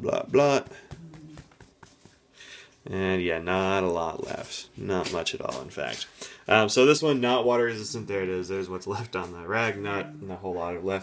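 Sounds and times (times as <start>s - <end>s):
cloth rag dabbing on paper: 0.3s - 6.2s.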